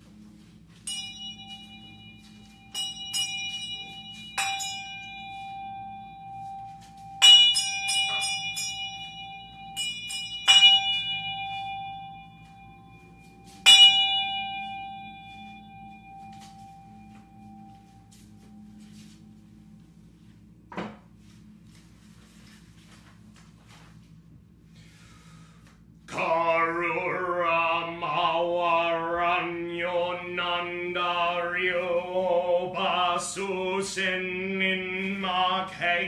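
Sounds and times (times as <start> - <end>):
metal bell ringing: 0.8 - 19.0.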